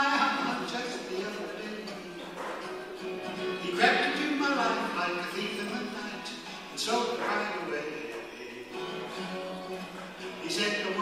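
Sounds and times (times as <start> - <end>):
acoustic guitar: 0.0 - 11.0
man singing: 0.0 - 11.0.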